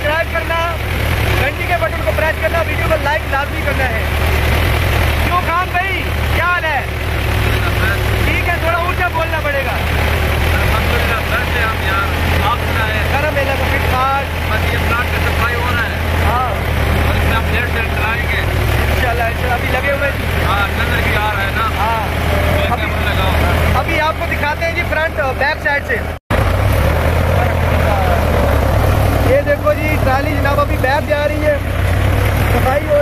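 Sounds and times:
tractor engine running: 0.0s - 33.0s.

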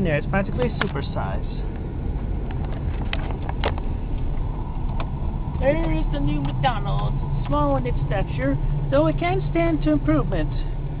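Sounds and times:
car cabin road rumble: 0.0s - 11.0s.

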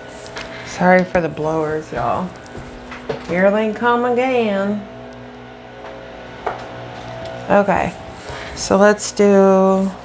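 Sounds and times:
leaf blowers droning: 0.0s - 10.0s.

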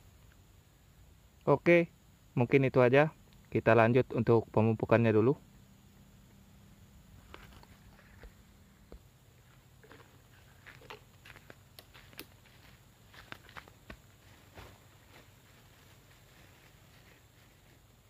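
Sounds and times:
footsteps on dry leaves: 9.4s - 18.0s.

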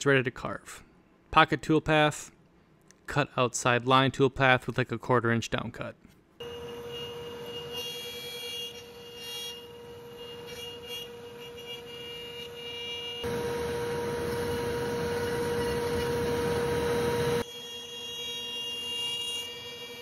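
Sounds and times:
router bit cutting wood: 13.2s - 17.4s
router spindle whining: 13.2s - 17.4s.

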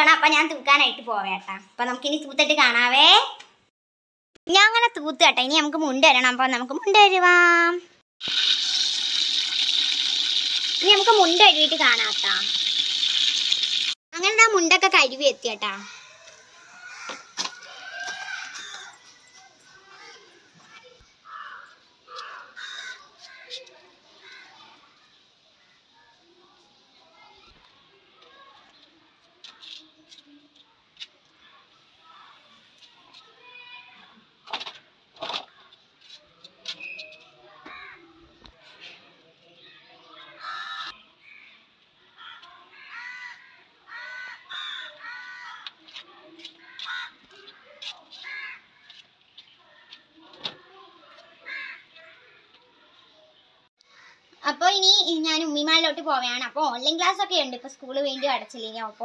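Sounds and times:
crow cawing: 21.3s - 23.4s, 40.4s - 41.0s, 42.2s - 45.7s, 46.6s - 47.2s, 48.2s - 48.6s, 51.4s - 51.9s, 53.9s - 54.2s.

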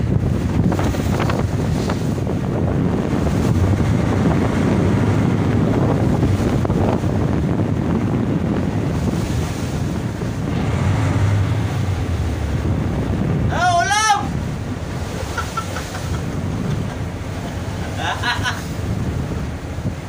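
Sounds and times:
waves washing around boat: 0.0s - 20.0s
wind buffeting microphone: 0.0s - 20.0s
low rumble: 2.3s - 20.0s.

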